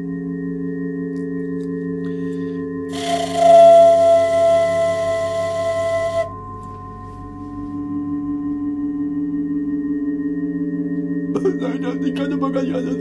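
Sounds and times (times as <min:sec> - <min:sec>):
ringing drone of overlapping tones: 0:00.0 - 0:13.0.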